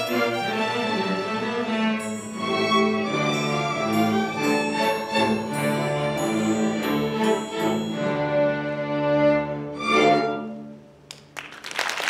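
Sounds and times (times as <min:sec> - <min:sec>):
string orchestra playing: 0:00.0 - 0:11.1.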